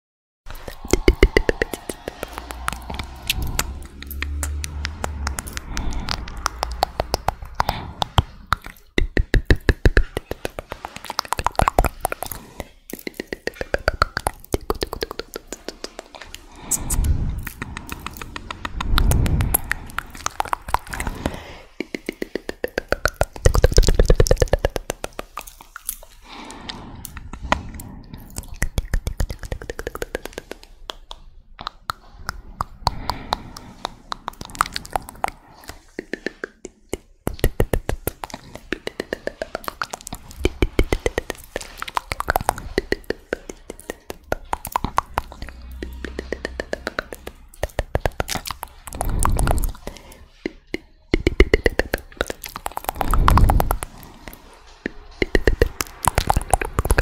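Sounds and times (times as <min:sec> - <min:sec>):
wet mouth clicks and pops: 0:00.5 - 0:57.0.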